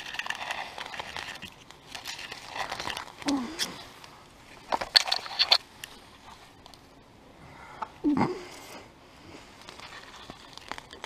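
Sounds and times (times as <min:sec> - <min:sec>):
faint rustling: 0:00.0 - 0:11.0.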